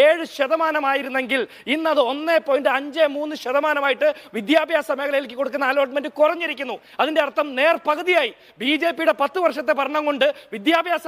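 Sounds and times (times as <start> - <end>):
man talking fast: 0.0 - 11.0.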